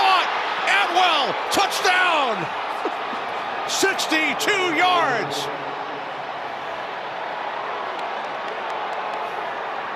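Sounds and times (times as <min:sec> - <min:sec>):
stadium crowd noise: 0:00.0 - 0:09.9.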